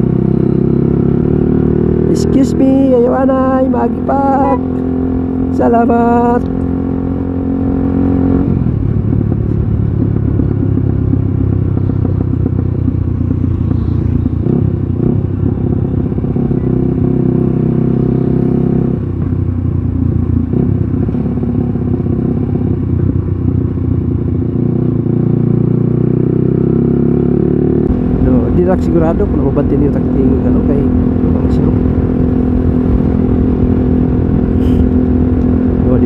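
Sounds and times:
motorcycle engine running: 0.0s - 36.0s.

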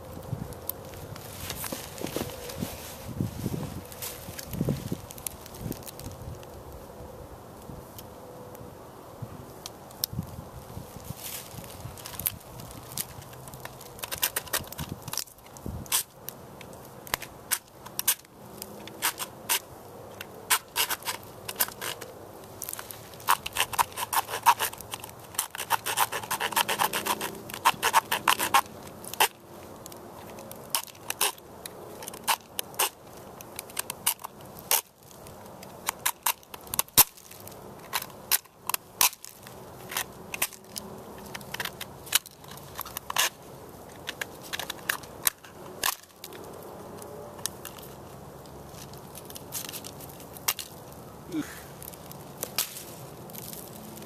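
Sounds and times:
knife scraping shell: 20.5s - 22.1s, 23.2s - 29.4s.

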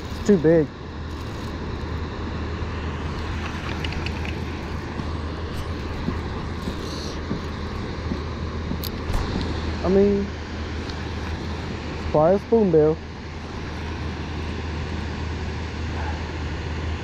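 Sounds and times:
water pouring through spillway: 3.0s - 4.8s.

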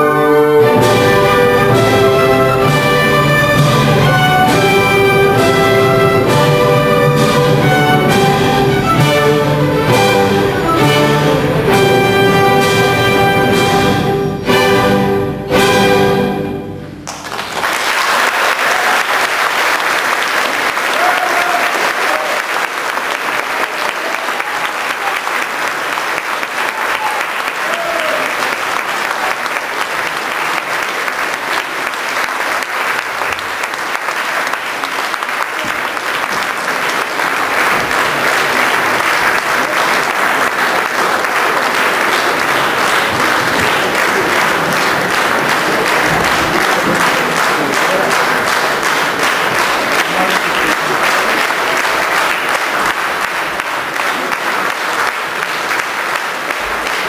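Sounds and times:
audience applauding: 0.0s - 14.1s, 17.0s - 57.0s.

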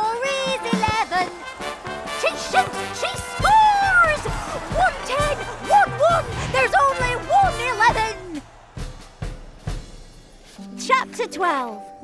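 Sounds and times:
drum beats: 0.0s - 10.6s.

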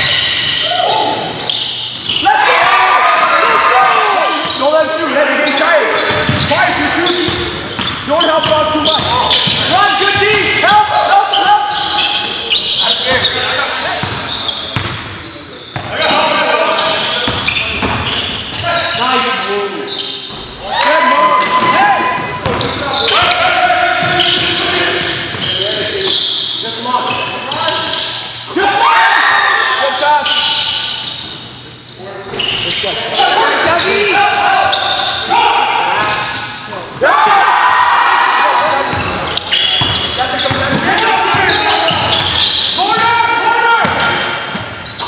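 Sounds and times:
court noise: 0.0s - 45.0s
players' voices echoing: 0.0s - 45.0s
basketball bouncing on gym floor: 6.0s - 10.6s, 14.0s - 15.1s, 17.2s - 18.6s, 39.8s - 42.4s
basketball bouncing on wooden floor: 6.1s - 6.6s.

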